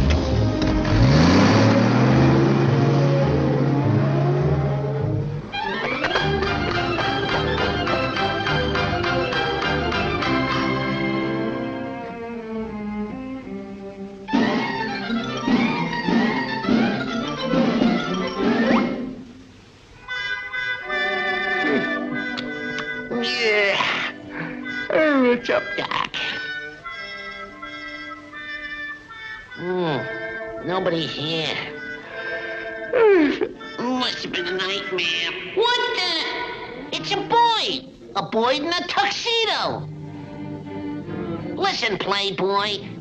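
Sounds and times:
cartoon truck engine revving: 0.0s - 7.6s, 14.3s - 19.0s
orchestral cartoon music: 0.0s - 43.0s.

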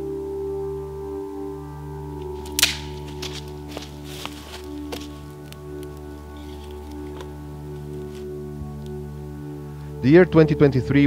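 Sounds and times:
soft ambient music: 0.0s - 11.0s
campfire crackling and popping: 2.2s - 9.0s.

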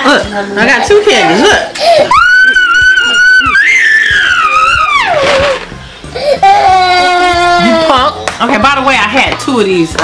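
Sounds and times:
toddler crying: 1.1s - 8.2s.

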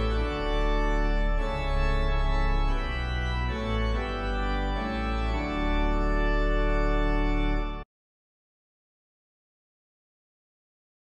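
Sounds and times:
organ chords: 0.0s - 7.8s.

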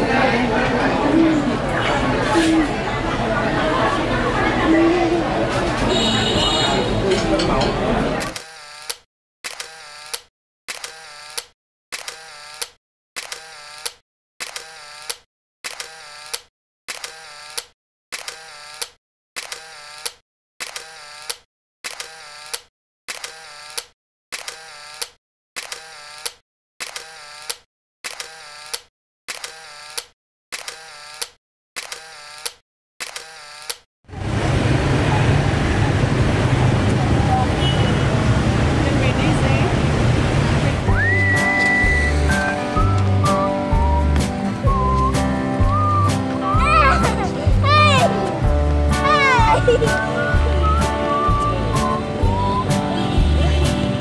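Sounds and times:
camera shutter clicks: 8.2s - 33.9s.

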